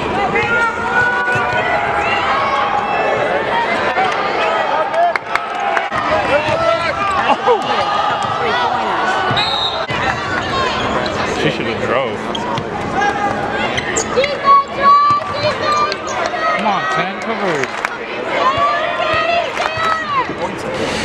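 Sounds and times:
crowd voices calling: 0.0s - 21.0s
sneakers squeaking: 12.3s - 14.4s.

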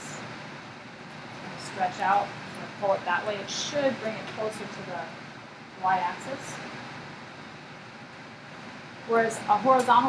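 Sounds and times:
room tone hiss and hum: 0.0s - 10.0s.

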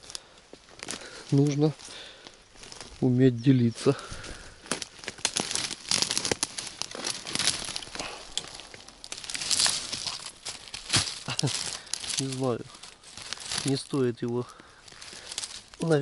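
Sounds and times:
twigs and leaves rustling: 0.0s - 16.0s
thin branches snapping: 4.1s - 16.0s.

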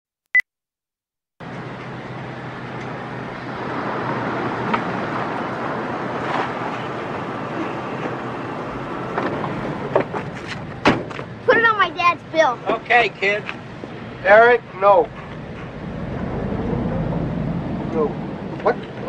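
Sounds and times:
noisy outdoor ambience: 1.4s - 19.0s.

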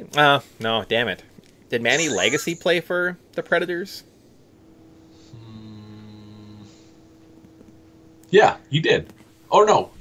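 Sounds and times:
man humming: 5.3s - 7.0s.

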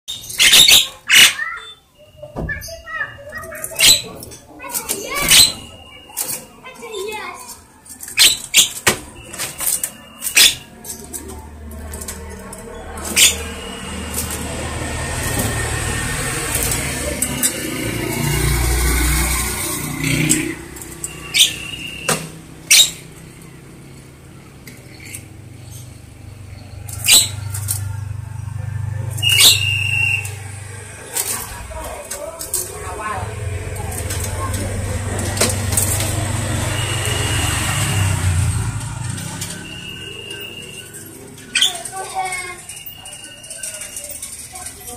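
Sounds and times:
bird chattering calls: 0.1s - 1.8s, 13.0s - 13.7s, 19.9s - 23.2s, 24.9s - 31.0s.

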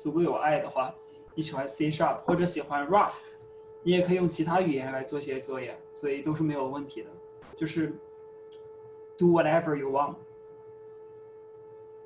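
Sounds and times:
man's voice: 0.0s - 3.2s, 3.9s - 8.0s, 9.2s - 10.2s
faint steady hum: 0.0s - 12.0s.

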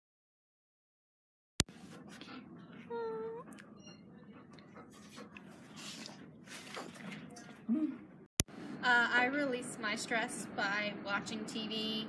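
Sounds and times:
dog whining: 2.2s - 5.4s.

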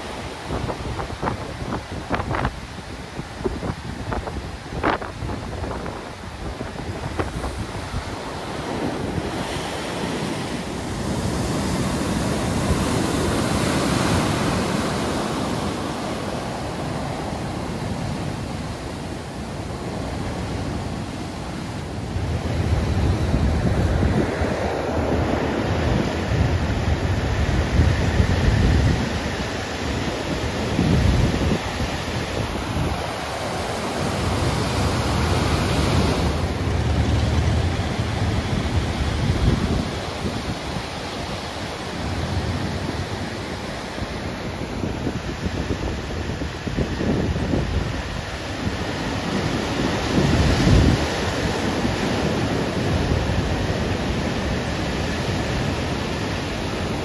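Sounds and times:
waves breaking on stony shore: 0.0s - 57.0s
wind buffeting microphone: 0.0s - 57.0s.

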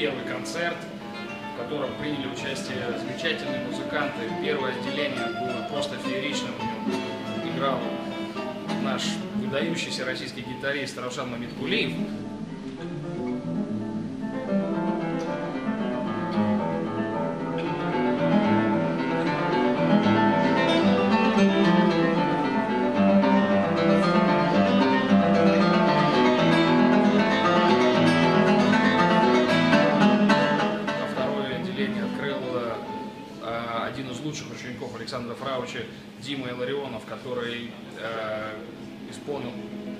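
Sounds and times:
classical guitar playing: 0.0s - 39.9s.

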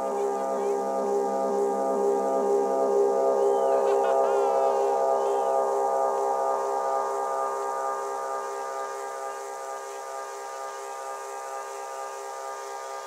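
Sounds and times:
sustained synth chord: 0.0s - 13.0s.

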